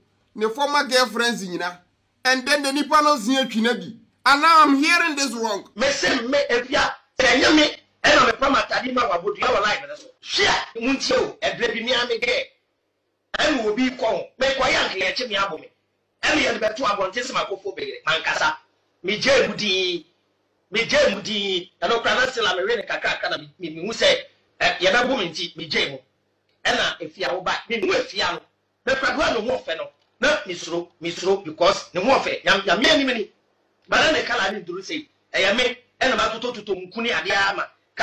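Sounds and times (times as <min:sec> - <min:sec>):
man speaking: 0:00.4 - 0:12.4, 0:13.4 - 0:20.0, 0:20.8 - 0:26.0, 0:26.7 - 0:33.3, 0:33.9 - 0:37.7
man talking: 0:00.4 - 0:12.4, 0:13.4 - 0:20.0, 0:20.7 - 0:26.0, 0:26.7 - 0:33.3, 0:33.9 - 0:37.7.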